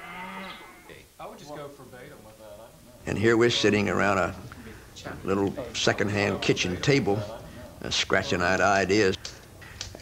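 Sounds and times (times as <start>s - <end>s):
cattle mooing: 0.0s - 1.0s.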